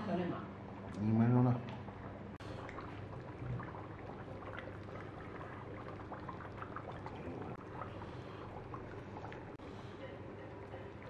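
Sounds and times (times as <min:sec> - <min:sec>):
broth bubbling with small pops: 0:00.6 - 0:11.0.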